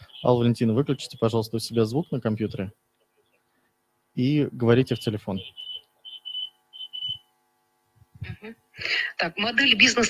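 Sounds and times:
high-pitched pulsed tone: 0:05.4 - 0:07.3.

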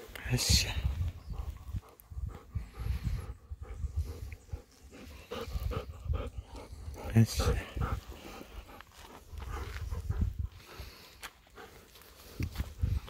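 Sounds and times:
dog panting: 0:00.4 - 0:13.0.

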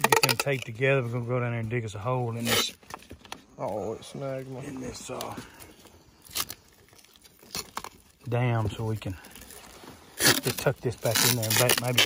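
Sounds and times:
duct tape ripping: 0:02.4 - 0:02.8, 0:06.2 - 0:08.2, 0:10.1 - 0:12.0.

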